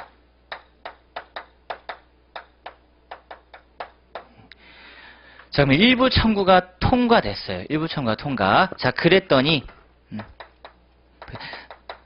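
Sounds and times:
chalk tapping on chalkboard: 0.0 - 4.3, 10.2 - 12.0.

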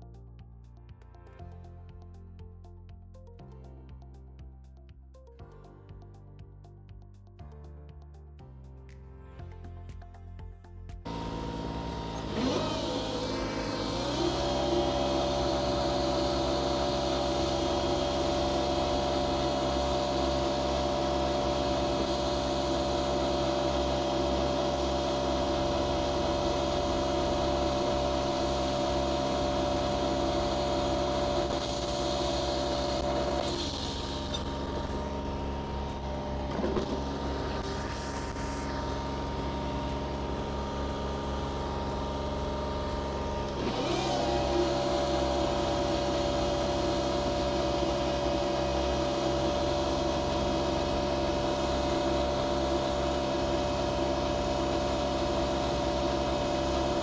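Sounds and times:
ride-on mower whining: 11.1 - 57.0.

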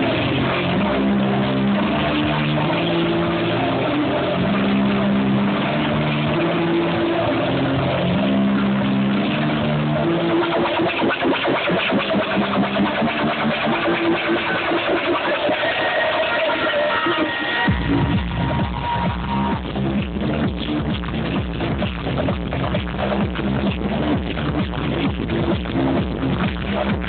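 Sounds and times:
electronic dance music: 0.0 - 27.0.

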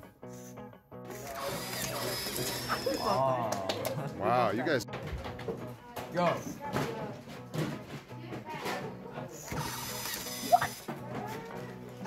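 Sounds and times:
toy motor gear whirr: 1.1 - 3.2, 9.4 - 10.9.

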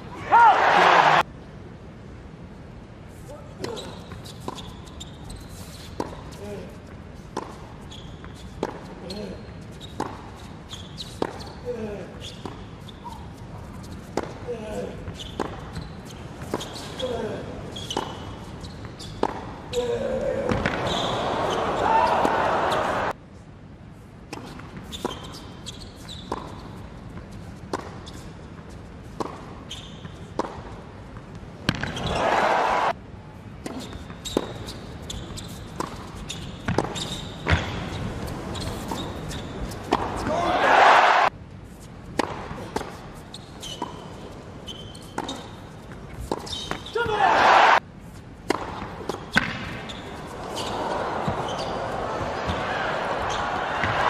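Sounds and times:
crowd cheering and applauding: 0.4 - 1.2, 21.2 - 23.1, 32.2 - 32.9, 40.5 - 41.3, 47.3 - 47.8, 50.7 - 54.0
tennis ball bouncing on hard court: 5.9 - 6.3, 7.3 - 8.9, 9.8 - 11.6, 12.4 - 14.4, 15.0 - 17.0, 17.8 - 19.7, 20.4 - 23.0, 24.3 - 32.4, 33.6 - 40.4, 42.0 - 47.2, 48.4 - 54.0
tennis ball struck by rackets: 19.2 - 19.6, 20.4 - 20.9, 31.6 - 32.2, 35.8 - 39.1, 39.8 - 40.4, 42.1 - 43.0, 45.2 - 45.5, 48.4 - 50.0.

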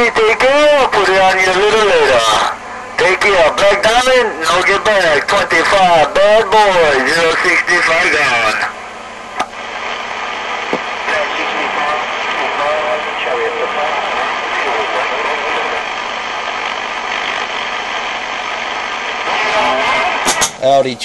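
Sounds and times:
faint garbled radio voice: 0.0 - 8.8, 11.0 - 16.0, 19.2 - 20.3
radio static hiss: 0.0 - 21.0.

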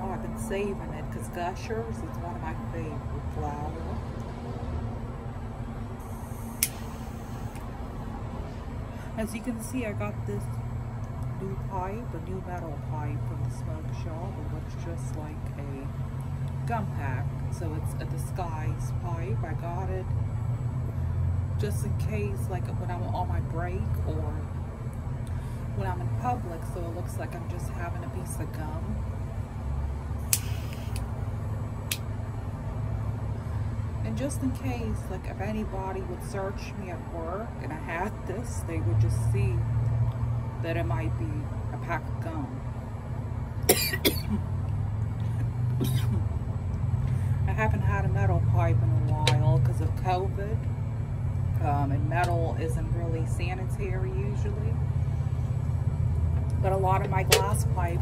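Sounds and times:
low background rumble: 0.0 - 58.0
lighter gas hiss: 6.0 - 7.7, 30.2 - 31.1
lighter flicking: 6.5 - 7.6, 30.3 - 31.1.

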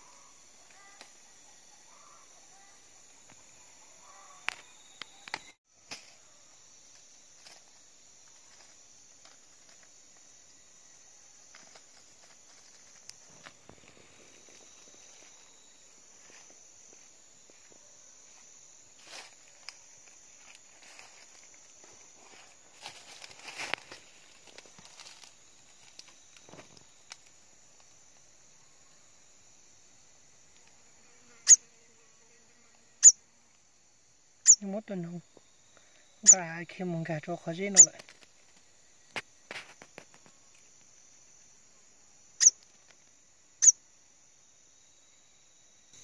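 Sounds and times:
high insect drone: 0.0 - 46.0
footsteps on dry leaf litter: 19.0 - 25.9.

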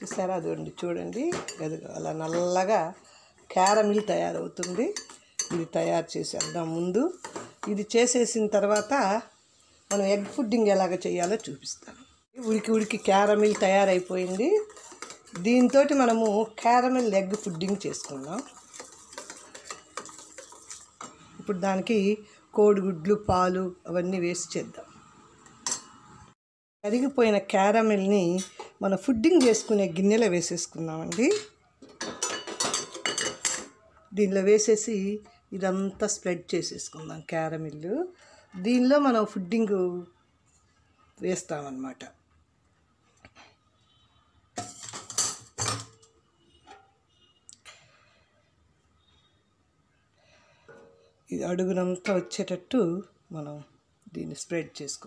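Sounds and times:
spatula clinking metal pan: 3.5 - 7.8, 8.7 - 9.1, 12.4 - 21.2, 31.1 - 33.8, 44.6 - 46.0
metal tin scraping on stove grate: 12.4 - 21.4, 44.6 - 46.0.

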